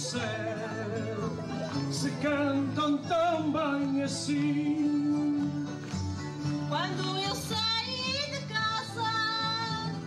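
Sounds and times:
strummed string accompaniment: 0.0s - 10.0s.

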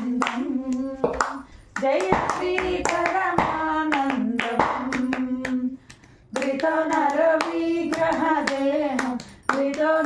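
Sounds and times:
hand claps: 0.0s - 10.0s
person singing devotional song: 0.0s - 10.0s.

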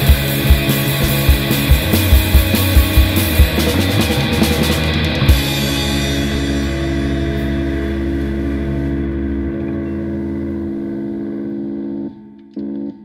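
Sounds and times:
bass guitar notes: 0.0s - 13.0s
distorted electric guitars ringing: 0.0s - 13.0s
short guitar chord stab: 1.6s - 12.4s.

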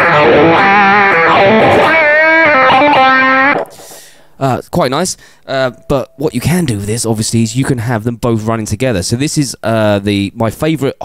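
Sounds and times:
distorted electric guitar lead: 0.0s - 3.8s.

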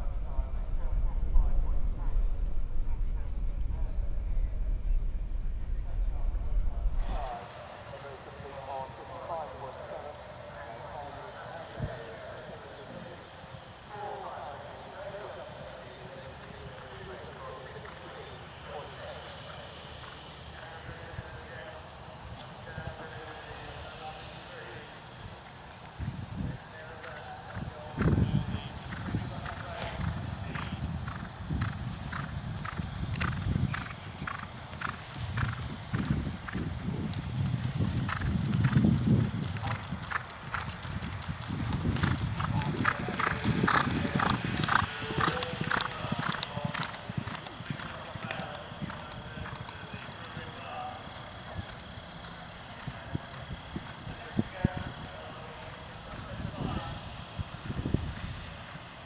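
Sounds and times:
horse hoofbeats on turf: 26.8s - 54.8s.

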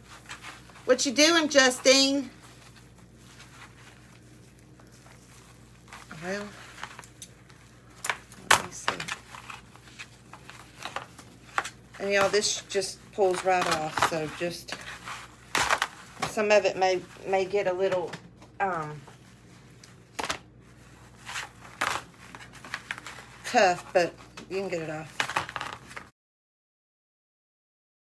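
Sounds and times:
tinsel crackling: 0.0s - 17.8s.

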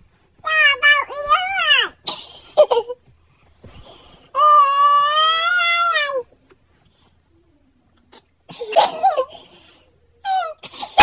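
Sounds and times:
child wailing: 4.4s - 6.2s.

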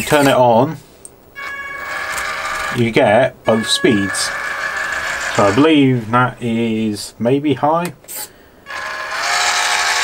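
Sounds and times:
electric motor and gearbox whirring: 0.0s - 0.4s, 1.4s - 6.1s, 8.1s - 10.0s.

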